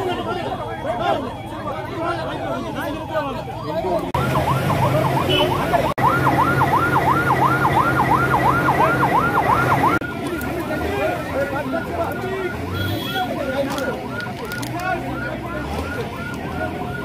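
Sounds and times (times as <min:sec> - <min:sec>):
emergency siren yelping: 0:00.0 - 0:17.0.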